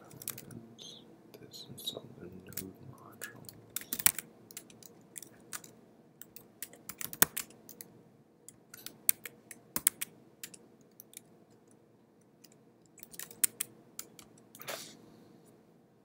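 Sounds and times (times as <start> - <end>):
typing on computer keyboard: 0.1 - 0.5, 3.3 - 7.9, 8.7 - 11.3, 12.4 - 14.4.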